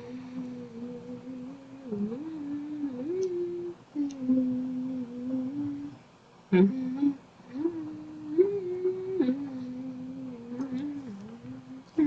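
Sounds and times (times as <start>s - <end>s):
person humming a tune: 0.0s - 12.0s.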